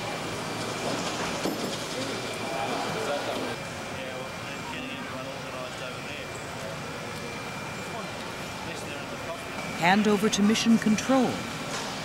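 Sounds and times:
faint muffled voices: 0:01.9 - 0:09.8.

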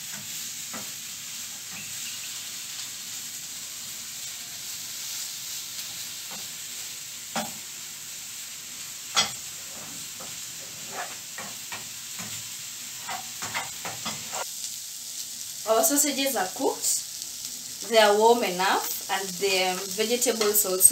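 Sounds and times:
food sizzling in oil in a pan: 0:00.0 - 0:20.9.

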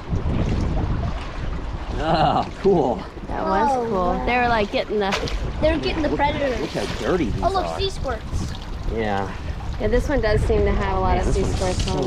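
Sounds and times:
wind buffeting microphone: 0:00.0 - 0:12.0
lapping water: 0:01.9 - 0:10.6.

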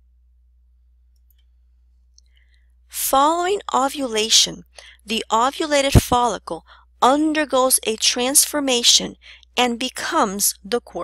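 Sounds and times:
steady low hum: 0:00.0 - 0:11.0
woman narrating: 0:02.9 - 0:11.0.

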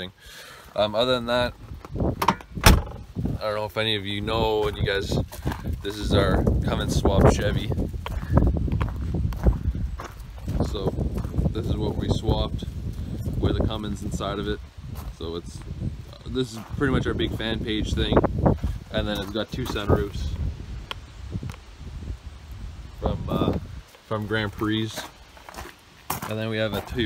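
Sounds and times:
wind noise on microphone: 0:01.2 - 0:27.0
footsteps on gravel: 0:04.4 - 0:20.4, 0:23.3 - 0:27.0.

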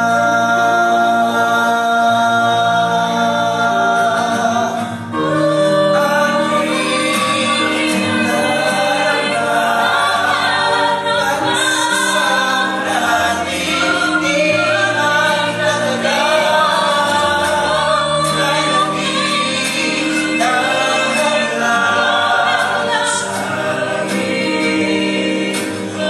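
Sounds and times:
mixed choir singing in harmony: 0:00.0 - 0:26.0.

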